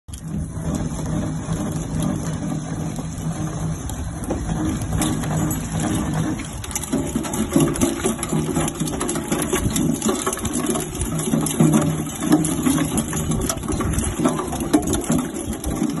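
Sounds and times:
boat motor humming: 0:00.1 - 0:16.0
clicks and rattles: 0:00.1 - 0:16.0.

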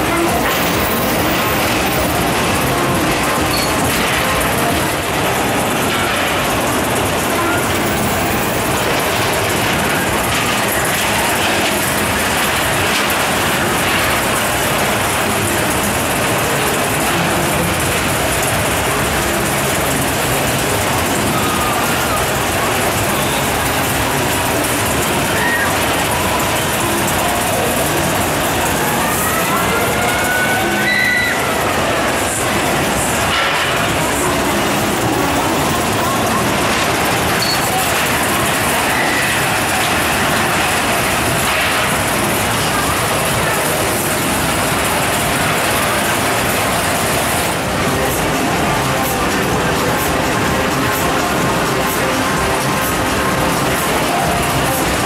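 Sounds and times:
coaster cars rattling on track: 0:00.0 - 0:55.0
fairground crowd noise: 0:00.0 - 0:55.0
brief squeal: 0:30.8 - 0:31.5.

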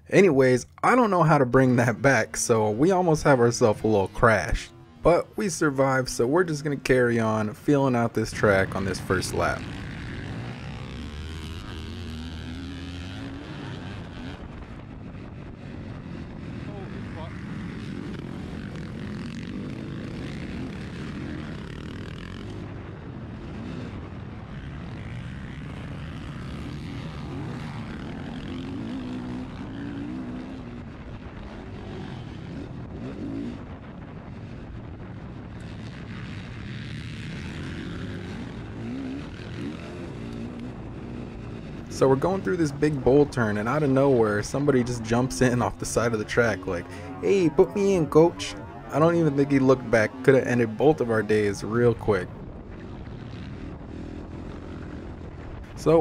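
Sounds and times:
other dirt bikes running: 0:00.0 - 0:56.0
motocross bike engine revving: 0:00.3 - 0:56.0.

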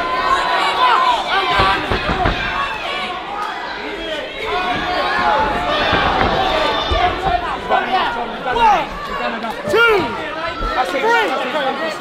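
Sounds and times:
crowd shouting and cheering: 0:00.0 - 0:12.0
dull thuds: 0:01.5 - 0:02.9, 0:04.3 - 0:09.3.

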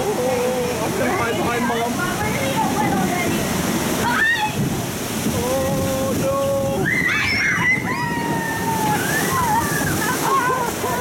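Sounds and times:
rushing falling water: 0:00.0 - 0:11.0.

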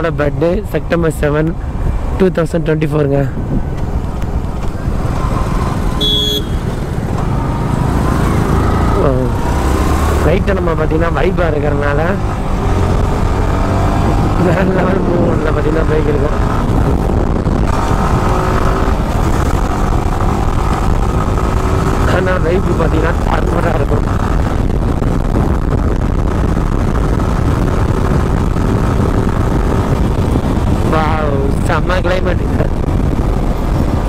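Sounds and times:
wind rush on microphone: 0:00.0 - 0:34.0
motorcycle engine: 0:03.6 - 0:31.5.

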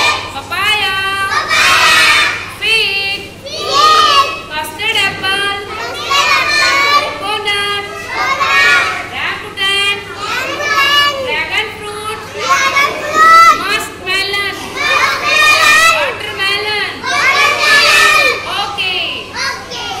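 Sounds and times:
children calling out and talking: 0:01.1 - 0:02.6, 0:03.2 - 0:20.0.

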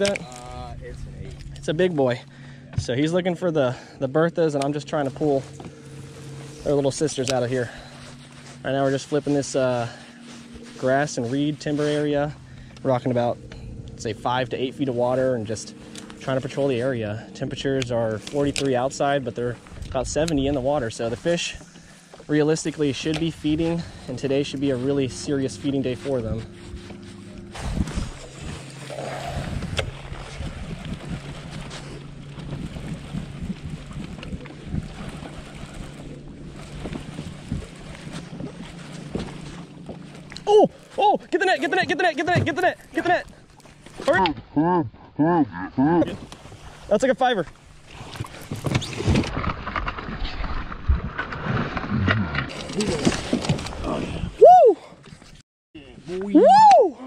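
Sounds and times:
water lapping at boat: 0:00.0 - 0:45.2, 0:45.8 - 0:55.4
electric trolling motor humming: 0:00.9 - 0:44.3
wind on microphone: 0:26.2 - 0:39.5.

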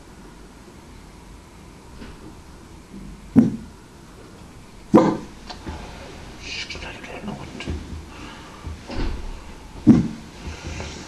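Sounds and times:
low rumble: 0:02.2 - 0:11.0
dull knocks and bumps: 0:03.3 - 0:03.7, 0:04.9 - 0:06.4, 0:07.4 - 0:11.0.

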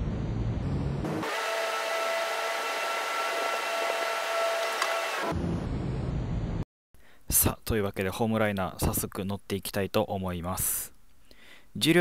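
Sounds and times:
low rumble: 0:00.0 - 0:01.0, 0:05.3 - 0:06.6
electric train whir and hum: 0:00.0 - 0:06.6.

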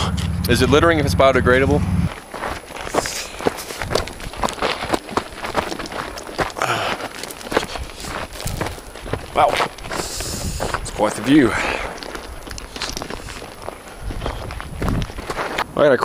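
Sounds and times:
footsteps on gravel trail: 0:01.9 - 0:16.0.

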